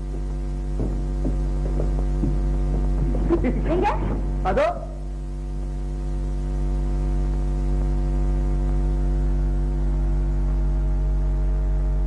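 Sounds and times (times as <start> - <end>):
low electrical hum with buzzing: 0.0 - 12.0.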